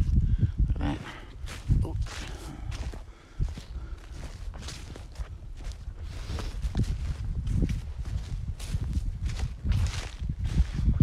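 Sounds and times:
footsteps on dry leaves: 0:01.4 - 0:11.0.

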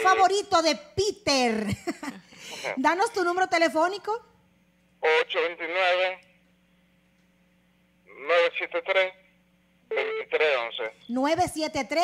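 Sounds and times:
person speaking over phone line: 0:00.0 - 0:00.5, 0:05.0 - 0:06.2, 0:08.1 - 0:09.3, 0:09.9 - 0:11.1.

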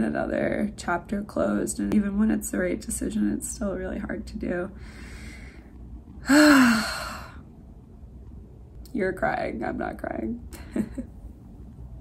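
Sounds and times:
woman sighing tearfully: 0:06.2 - 0:07.4.

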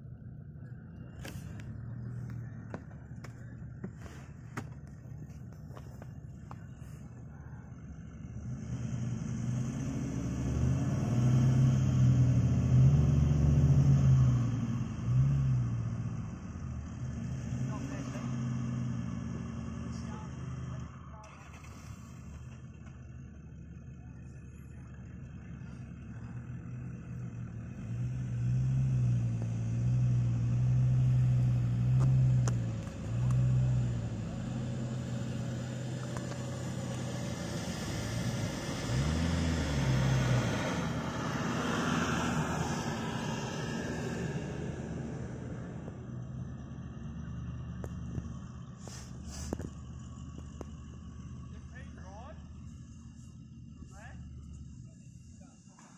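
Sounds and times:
engine revving: 0:07.4 - 0:55.9.

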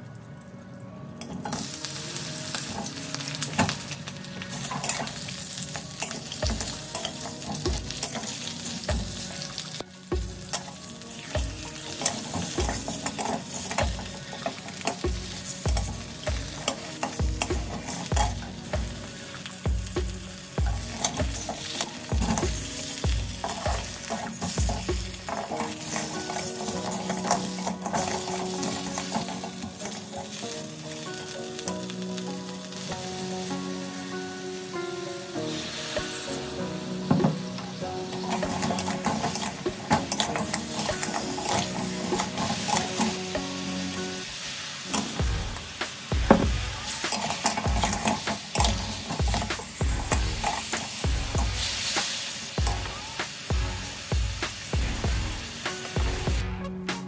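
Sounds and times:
metal spatula scraping: 0:01.2 - 0:19.6, 0:20.4 - 0:30.5, 0:37.0 - 0:43.4, 0:44.9 - 0:52.2
meat sizzling in a wok: 0:01.2 - 0:56.6.

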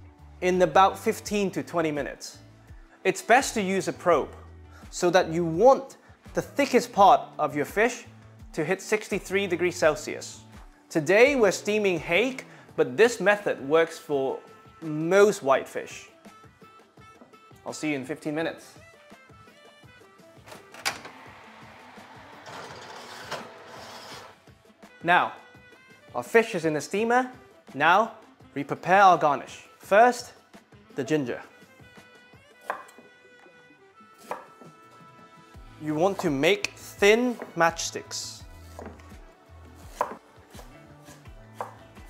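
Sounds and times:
soft background music: 0:00.0 - 0:42.0
oven rushing noise: 0:20.4 - 0:24.4
knife knocking on wooden board: 0:38.8 - 0:39.0, 0:40.0 - 0:40.2.

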